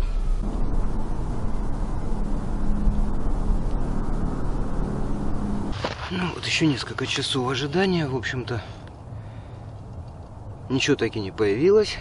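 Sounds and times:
vehicle engine running: 0:00.0 - 0:06.2.

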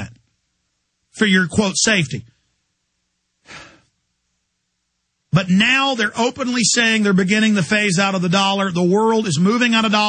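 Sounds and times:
man breathing into microphone: 0:03.4 - 0:04.0.

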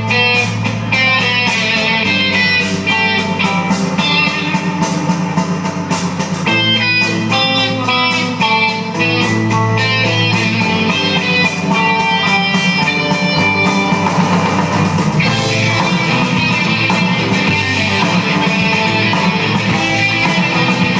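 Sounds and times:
distorted electric guitars: 0:00.0 - 0:20.9
drum kit: 0:00.0 - 0:20.9.

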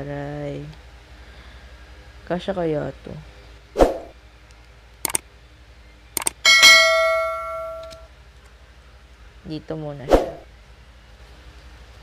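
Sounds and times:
quick clicks: 0:05.0 - 0:05.2, 0:06.2 - 0:06.4
bright bell ding: 0:06.5 - 0:08.1.

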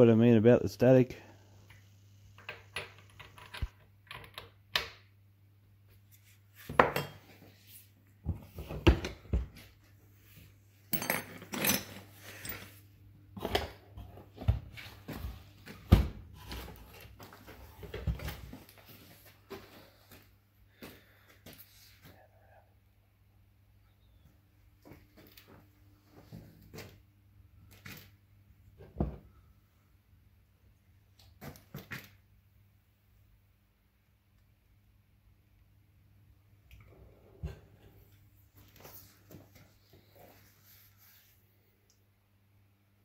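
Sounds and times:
low electrical hum: 0:00.0 - 0:43.0.

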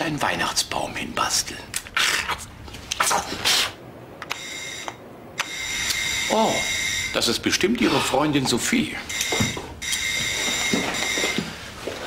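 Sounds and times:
electric doorbell ringing: 0:04.3 - 0:07.2, 0:09.1 - 0:11.4.

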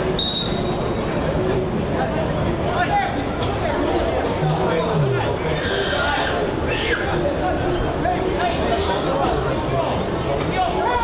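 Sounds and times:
spectators' voices: 0:01.0 - 0:11.0.

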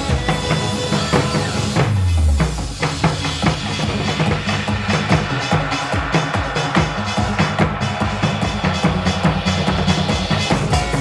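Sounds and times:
recorded backing track: 0:00.0 - 0:11.0.

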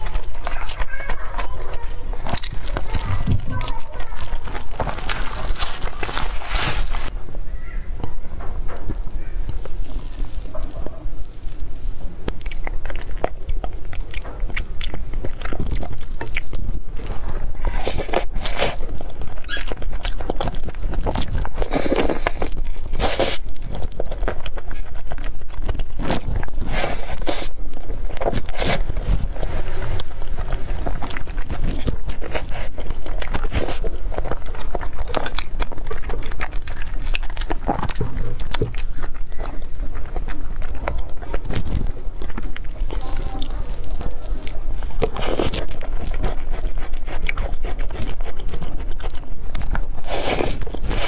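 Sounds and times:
chewing: 0:00.0 - 0:07.2, 0:08.0 - 0:51.0
plastic container crackling: 0:00.0 - 0:07.2.

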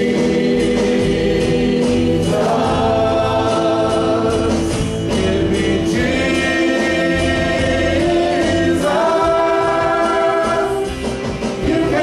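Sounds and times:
choir singing held notes: 0:00.0 - 0:12.0
instrumental accompaniment with bass: 0:00.0 - 0:12.0.

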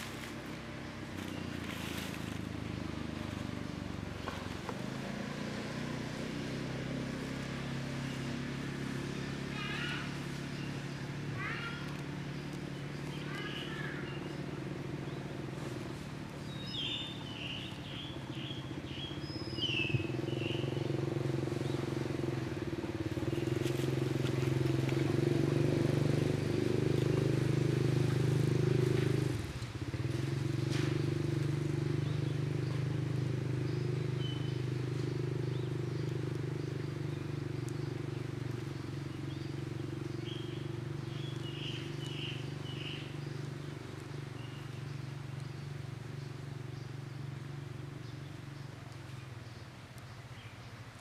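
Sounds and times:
motor engine running: 0:00.0 - 0:50.1.

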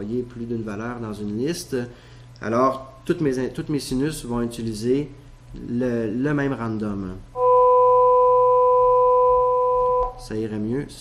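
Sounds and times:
sine-wave tone chord: 0:07.4 - 0:10.4.

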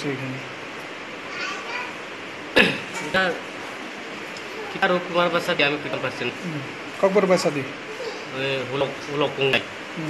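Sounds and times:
loud cough: 0:02.6 - 0:02.9.

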